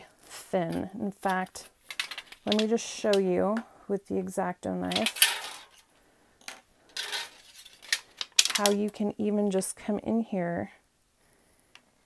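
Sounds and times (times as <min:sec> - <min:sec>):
metal sheet clinking: 0:00.7 - 0:03.2, 0:04.9 - 0:05.8, 0:06.9 - 0:08.9.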